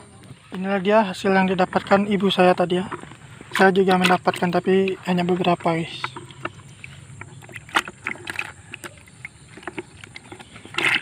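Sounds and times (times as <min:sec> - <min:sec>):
water splashing in a bucket: 0:00.2 - 0:11.0.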